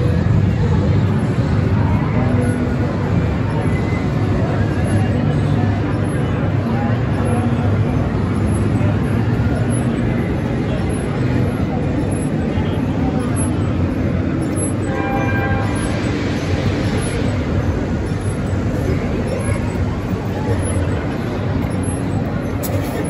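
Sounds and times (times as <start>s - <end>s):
crowd chatter: 0.0s - 23.0s
low machinery hum: 0.0s - 23.0s.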